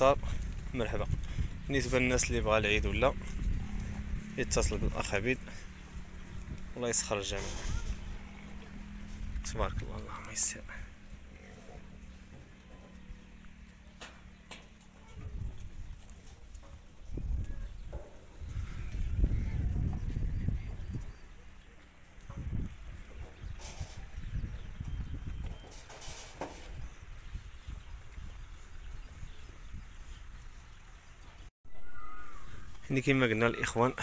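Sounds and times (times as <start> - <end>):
steady low rumble: 0.0 - 13.9
hooves thudding on dirt: 0.0 - 31.5
sheep shuffling in a pen: 1.6 - 18.6
brief rustles: 7.3 - 8.1.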